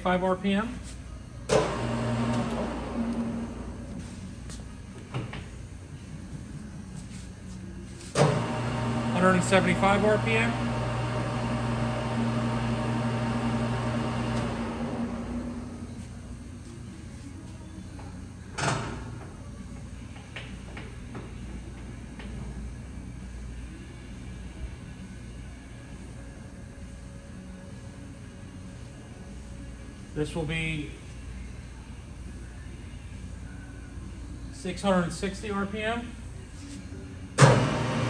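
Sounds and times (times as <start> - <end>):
lathe running and coasting down: 1.5 - 3.9, 8.2 - 16.1, 37.4 - 38.0.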